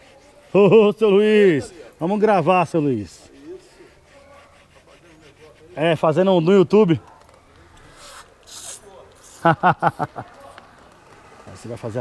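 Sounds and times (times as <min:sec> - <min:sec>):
spray bottle squirts: 0:07.8 - 0:09.4.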